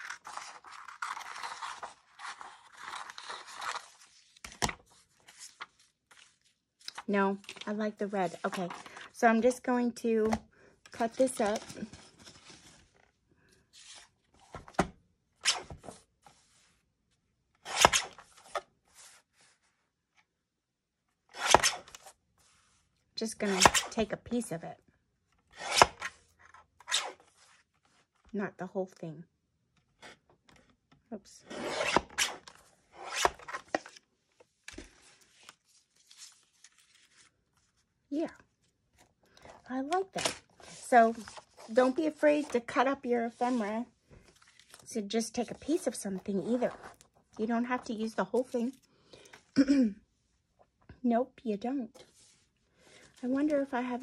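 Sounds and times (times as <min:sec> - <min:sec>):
plastic and paper scraping and clicking: 0:00.0 - 0:09.2, 0:10.2 - 0:13.2, 0:31.7 - 0:37.8.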